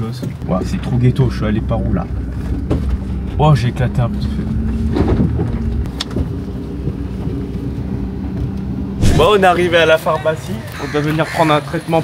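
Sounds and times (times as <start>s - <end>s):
vehicle engine and road rumble: 0.0s - 12.0s.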